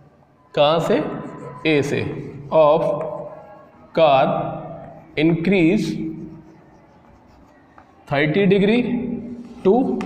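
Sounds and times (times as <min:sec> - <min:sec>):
chalk scratching on a blackboard: 0:01.2 - 0:08.1.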